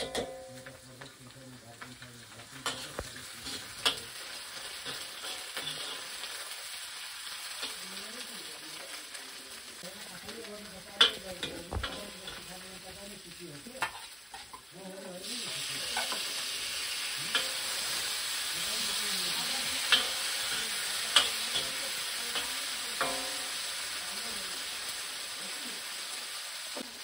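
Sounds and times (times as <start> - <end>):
vegetables sizzling in a wok: 0.0 - 27.0
metal ladle scraping a pan: 2.6 - 6.3.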